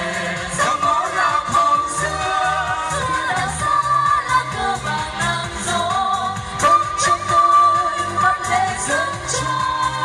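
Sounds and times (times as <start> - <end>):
amplified backing music: 0.0 - 10.0
person singing with vibrato: 0.0 - 10.0.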